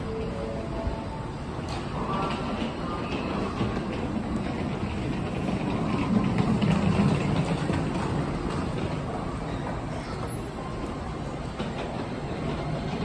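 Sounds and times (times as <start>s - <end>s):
electric train rumble and hum: 0.0s - 13.0s.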